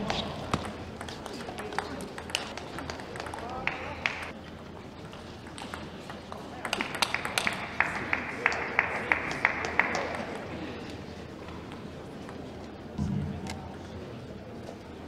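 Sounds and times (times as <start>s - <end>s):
murmur of voices: 0.0s - 15.0s
spectators applauding: 1.3s - 4.3s, 6.7s - 10.6s.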